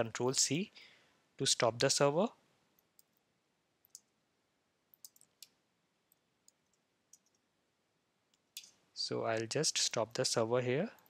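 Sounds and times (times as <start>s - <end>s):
short breath: 0.7s - 1.3s.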